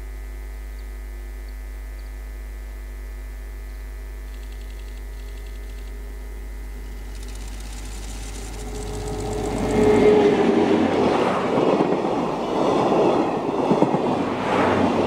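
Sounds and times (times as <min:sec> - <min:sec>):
low steady hum: 0:00.0 - 0:11.0
electric locomotive passing: 0:06.8 - 0:15.0
train wheels clattering on rails: 0:07.2 - 0:14.2.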